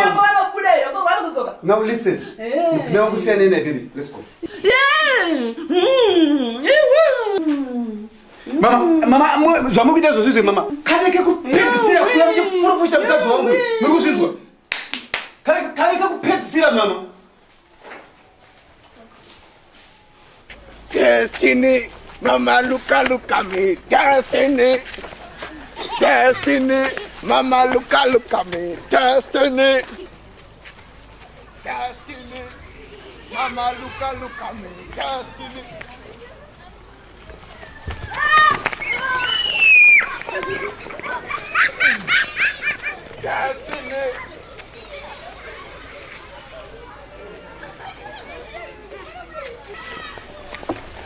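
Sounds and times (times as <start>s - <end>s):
sharp hand claps: 14.7s - 15.4s
faint voices: 17.7s - 51.0s.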